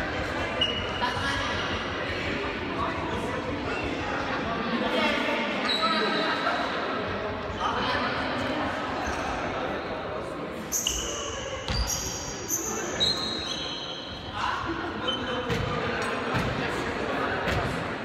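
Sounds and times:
sneakers squeaking on wooden floor: 10.7s - 14.3s.

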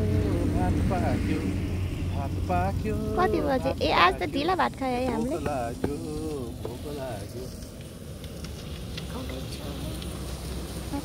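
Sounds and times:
man talking: 0.0s - 1.5s, 2.2s - 7.6s
low engine hum: 0.0s - 11.0s.

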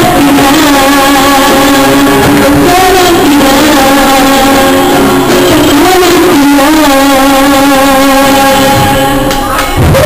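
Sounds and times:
acoustic guitar: 0.0s - 10.0s
girl singing: 0.0s - 10.0s.

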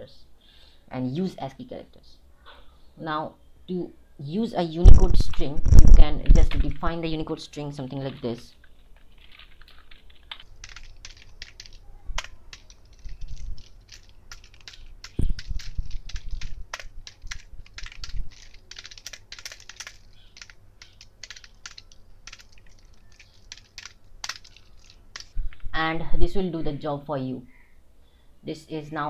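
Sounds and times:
computer keyboard typing: 8.0s - 25.4s.

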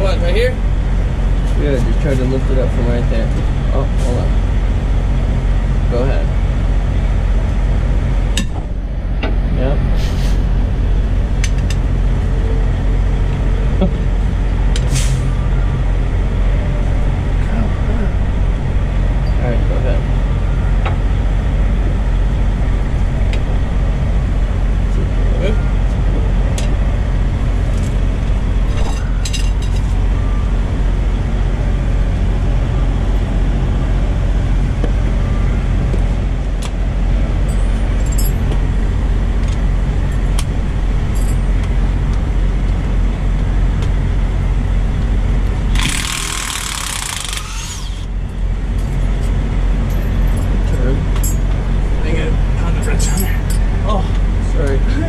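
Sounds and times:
diesel truck engine idling: 0.0s - 55.0s
hiss: 10.0s - 10.4s
sharp metallic clicks: 45.7s - 48.1s.

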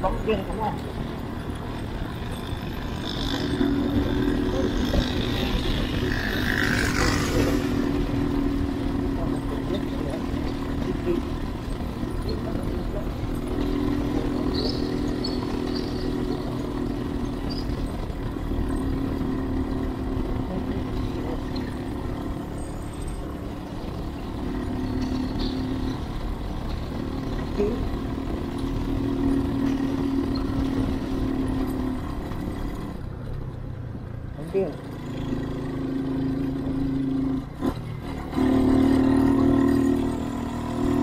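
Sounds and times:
motorcycle engine running: 0.0s - 41.0s
road rumble: 0.0s - 41.0s.

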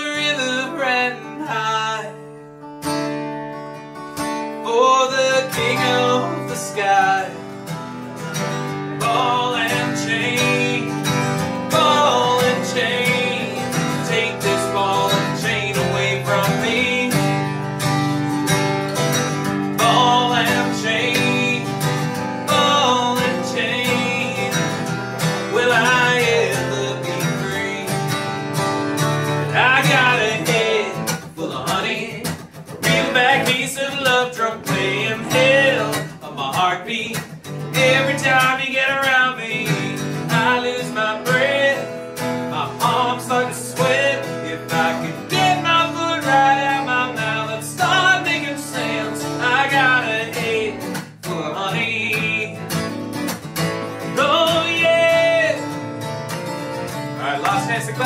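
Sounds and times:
man singing: 0.0s - 2.4s, 4.6s - 7.6s, 8.8s - 17.8s, 19.2s - 28.6s, 29.2s - 53.0s, 54.0s - 55.8s, 57.2s - 58.0s
acoustic guitar strumming: 0.0s - 58.0s.

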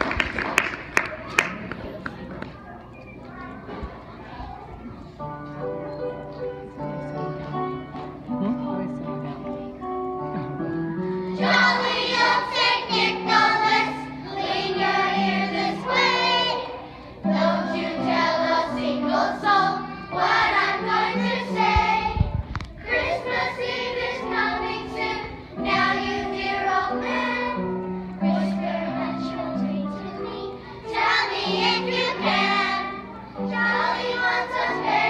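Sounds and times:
instrumental accompaniment: 4.8s - 35.0s
children's choir singing: 9.8s - 35.0s.

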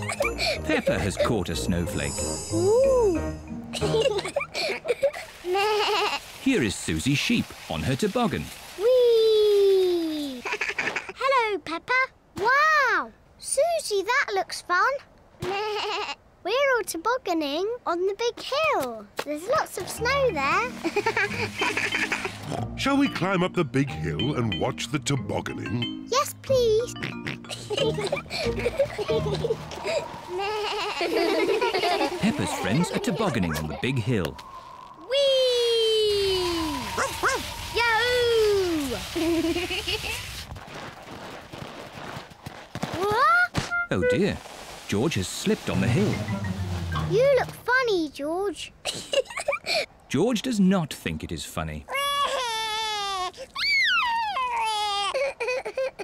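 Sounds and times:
girl's cartoon voice calling wheee: 35.0s - 39.0s
cartoon child crying whee: 51.9s - 56.0s.

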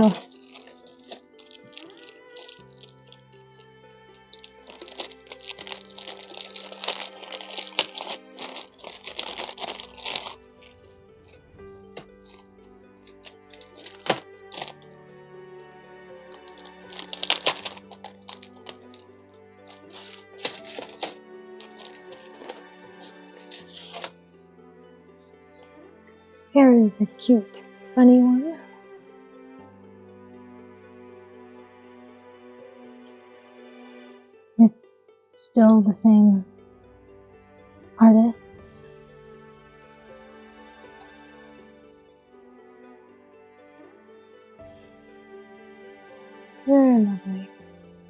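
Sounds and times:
plastic sleeve crinkling: 0.0s - 3.4s, 4.2s - 24.2s
soft background music: 0.0s - 48.0s.

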